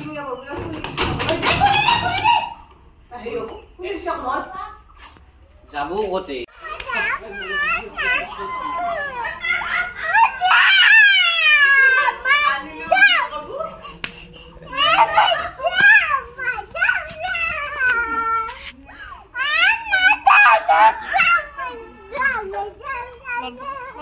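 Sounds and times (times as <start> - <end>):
girl crying loudly: 19.2 - 21.8.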